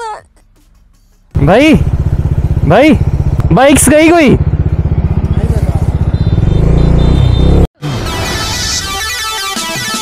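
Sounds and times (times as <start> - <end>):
motorcycle engine running: 1.3 - 7.7.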